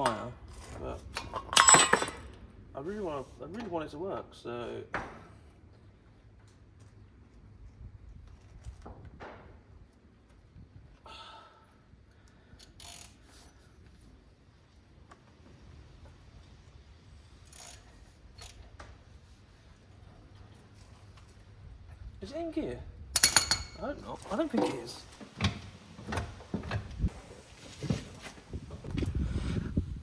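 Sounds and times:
metal tools clicking and clunking: 0:00.0 - 0:02.4, 0:23.1 - 0:24.8.

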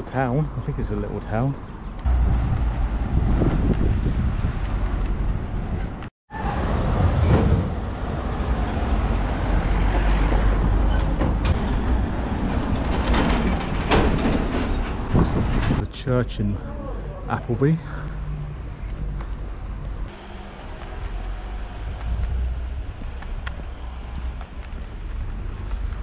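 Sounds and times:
low rumble of street noise: 0:00.0 - 0:26.0.

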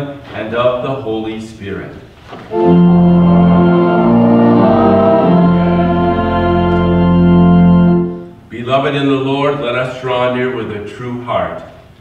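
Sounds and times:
church organ playing chords: 0:02.5 - 0:08.5.

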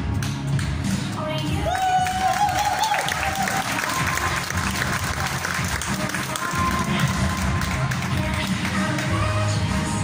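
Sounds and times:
music through sound system: 0:00.0 - 0:10.0
audience applauding: 0:01.7 - 0:09.1.

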